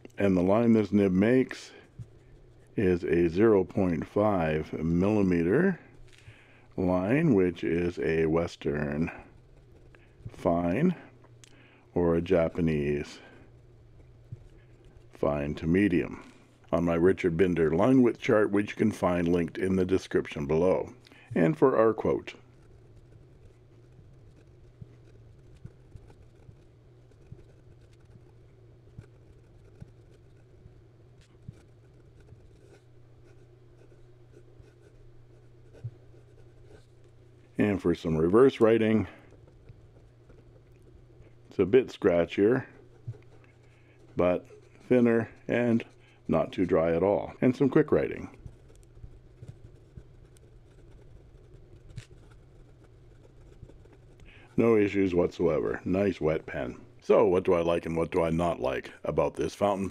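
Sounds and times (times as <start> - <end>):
low steady hum: 0.0 - 59.9
pen nib scratching on paper: 19.0 - 56.0.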